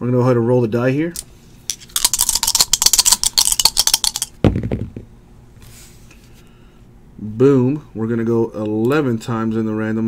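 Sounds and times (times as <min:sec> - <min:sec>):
dice clicking as they tumble: 0:01.7 - 0:05.0
dice rattling in hand: 0:01.7 - 0:05.0
dice landing on mat: 0:03.7 - 0:05.1.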